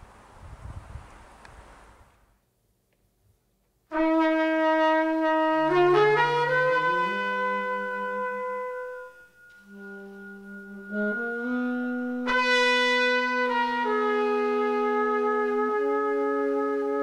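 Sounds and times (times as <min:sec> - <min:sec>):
trumpet and saxophone free jazz: 0:03.9 - 0:17.0.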